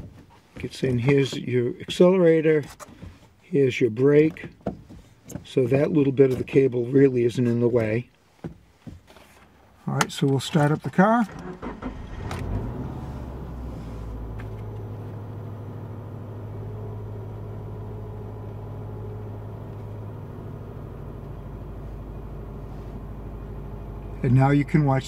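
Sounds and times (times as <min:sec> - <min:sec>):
car engine starting and idling: 0:09.8 - 0:25.0.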